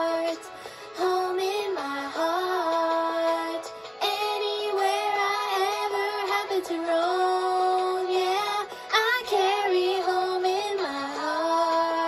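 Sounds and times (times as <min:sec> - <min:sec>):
cartoon song through laptop speakers: 0:00.0 - 0:12.0.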